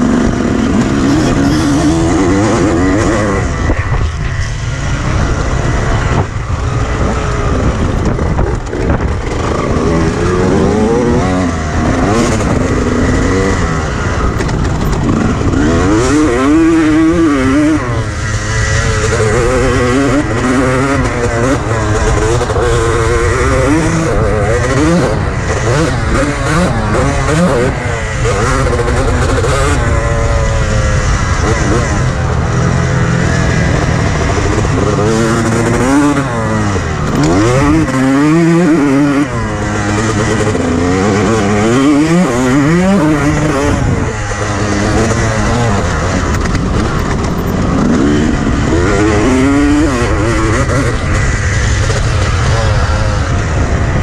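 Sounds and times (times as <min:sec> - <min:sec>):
motocross engine revving: 0:00.0 - 0:54.0.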